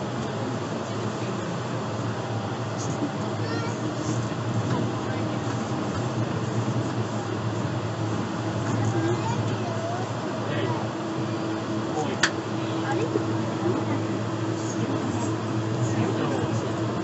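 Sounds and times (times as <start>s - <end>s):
train running noise: 0.0s - 17.0s.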